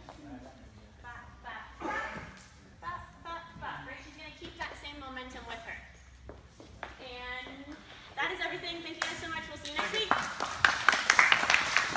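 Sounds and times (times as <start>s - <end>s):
hand clapping: 9.0s - 11.9s.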